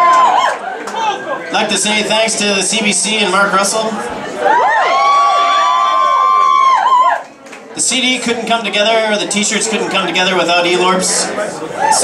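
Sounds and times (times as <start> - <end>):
audience whooping and cheering: 0.0 - 1.4, 4.2 - 7.4, 11.8 - 12.0.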